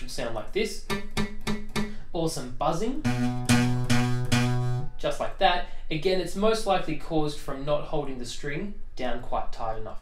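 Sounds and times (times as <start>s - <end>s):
acoustic guitar strums with buzzing: 0.8s - 2.0s, 2.9s - 5.0s.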